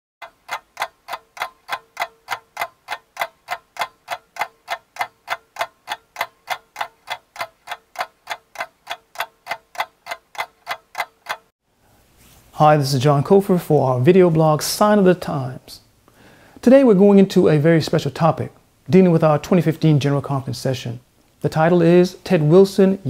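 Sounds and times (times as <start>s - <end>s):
clock ticking: 0.2s - 11.5s.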